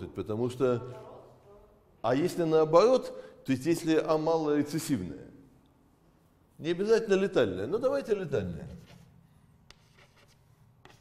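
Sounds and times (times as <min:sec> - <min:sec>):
chalk scratching on blackboard: 0:08.4 - 0:11.0
chalk tapping: 0:08.5 - 0:11.0.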